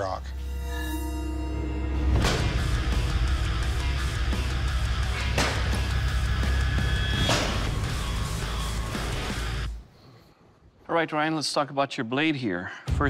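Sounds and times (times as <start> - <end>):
heavy rock music: 2.1 - 9.8.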